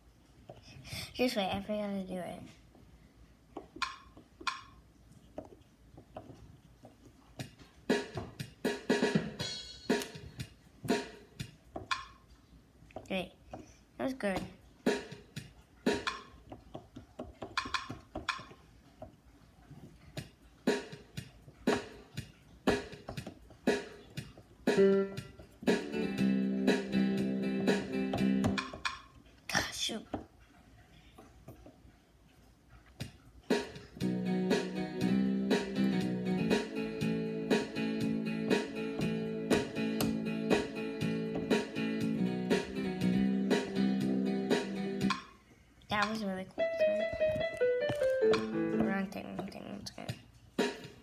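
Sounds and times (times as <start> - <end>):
electronic keyboard notes: 24.3 - 28.9, 34.0 - 45.2, 46.6 - 49.4
held keyboard chord: 24.7 - 28.7, 34.0 - 45.2, 46.6 - 49.1.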